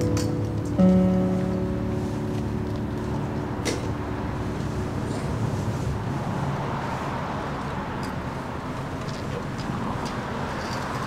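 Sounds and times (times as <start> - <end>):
sustained keyboard notes: 0.0 - 6.8
low rumble of street traffic: 0.0 - 11.0.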